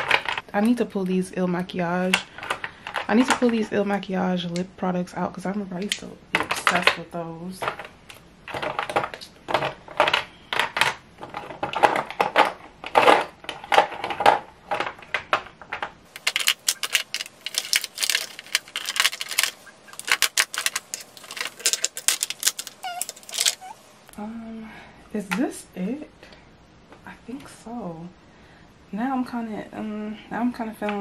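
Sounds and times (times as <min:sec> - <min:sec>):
plastic tubes clicking and clattering: 0:07.6 - 0:23.7.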